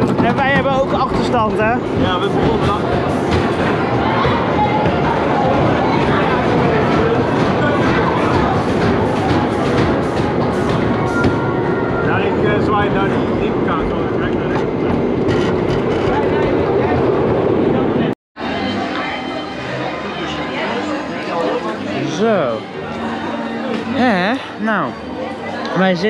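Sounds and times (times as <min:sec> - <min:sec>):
roller coaster rattling on track: 0:00.0 - 0:18.1
people's voices: 0:00.0 - 0:26.0.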